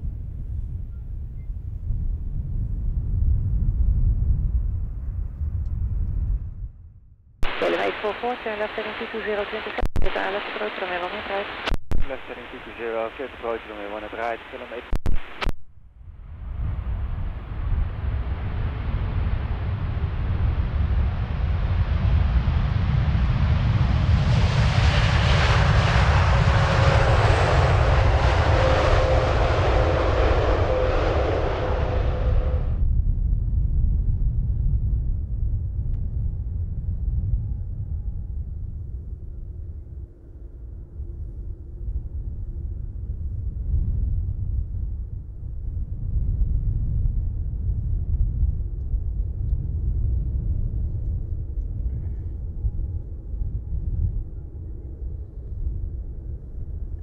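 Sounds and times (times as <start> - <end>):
low rumble of departing jet: 0.0 - 57.0
jet engines roaring at take-off: 7.4 - 15.5, 16.8 - 32.8.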